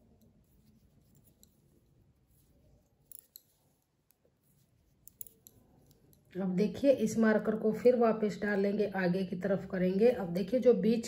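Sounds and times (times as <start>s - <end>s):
knitting needles clicking: 0.0s - 6.4s.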